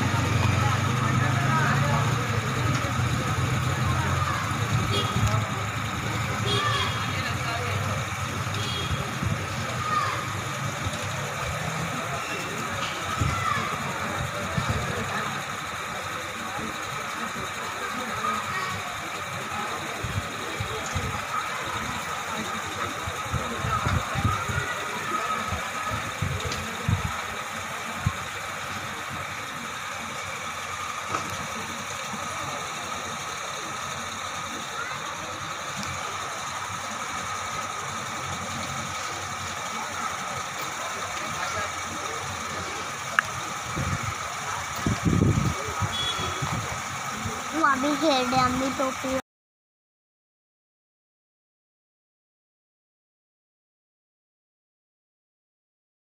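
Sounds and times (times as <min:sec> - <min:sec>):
people talking: 0:00.0 - 0:49.2
traffic hum: 0:00.0 - 0:49.2.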